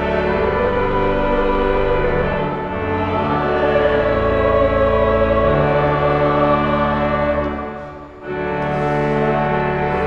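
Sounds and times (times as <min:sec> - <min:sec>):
church choir singing: 0:00.0 - 0:10.0
instrumental accompaniment: 0:00.0 - 0:10.0.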